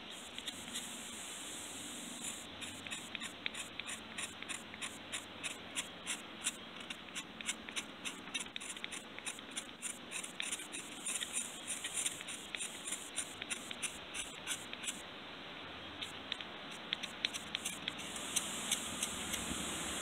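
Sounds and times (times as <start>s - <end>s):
knife scraping stone: 2.2s - 15.0s, 16.1s - 19.4s.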